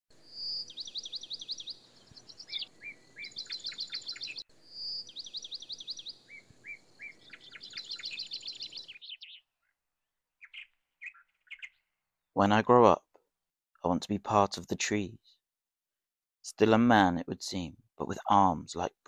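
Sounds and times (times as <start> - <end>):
songbird singing: 0.1 - 12.4
faint bird chirps: 0.2 - 9.8, 10.4 - 12.0.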